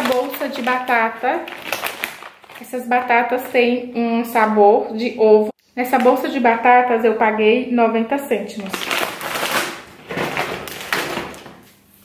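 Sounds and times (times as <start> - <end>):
plastic bags crinkling: 0.0 - 3.6, 8.6 - 12.0.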